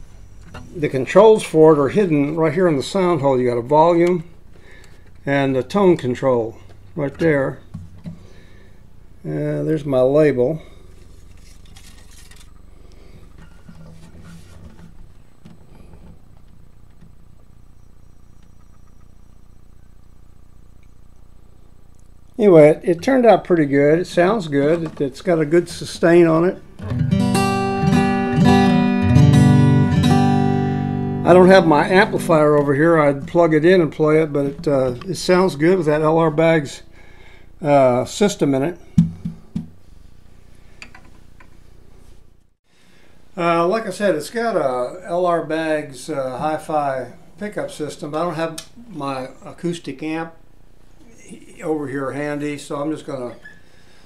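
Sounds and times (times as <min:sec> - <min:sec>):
steady low hum: 0:00.0 - 0:54.0
guitar case handling clicks and taps: 0:06.7 - 0:08.2
handling scrapes and rustles: 0:10.8 - 0:16.2.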